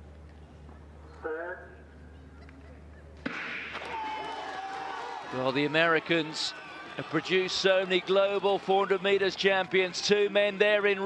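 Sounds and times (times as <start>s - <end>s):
crowd noise: 2.2s - 11.0s.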